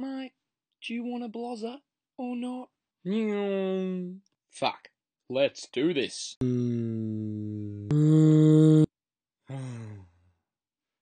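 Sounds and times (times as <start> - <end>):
man sighing: 6.4 - 8.9, 9.5 - 10.2.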